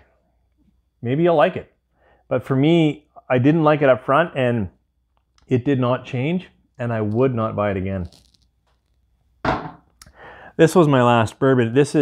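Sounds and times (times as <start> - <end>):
glass bottle set down on wood: 9.4 - 9.9.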